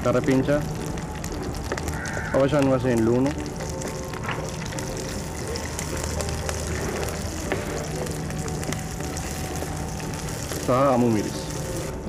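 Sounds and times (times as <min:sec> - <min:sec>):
food sizzling in a pan: 0:00.0 - 0:12.0.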